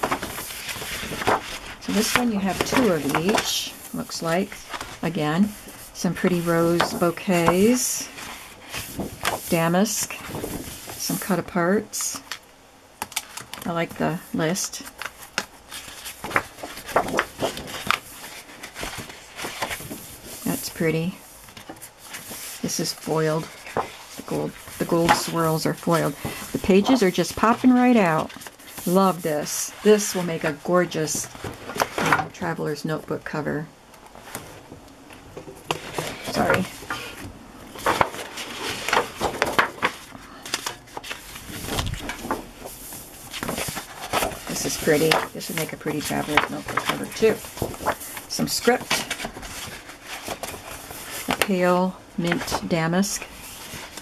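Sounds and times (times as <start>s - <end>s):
paper rustling: 0.0s - 11.8s, 13.0s - 32.4s, 35.7s - 54.0s.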